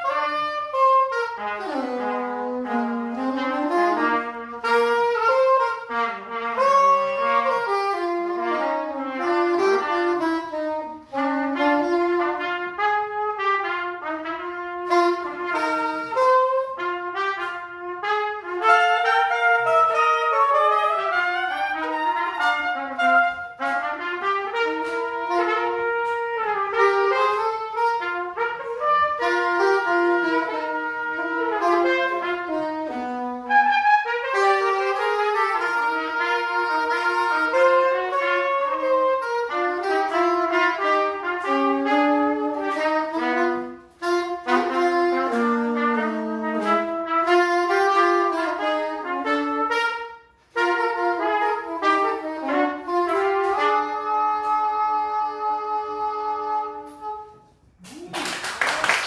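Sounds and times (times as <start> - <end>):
soprano saxophone: 0.0 - 59.0
trumpet: 0.0 - 59.0.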